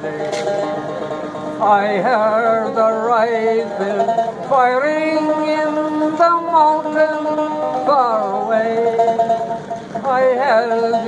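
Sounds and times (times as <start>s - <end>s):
banjo playing: 0.0s - 11.0s.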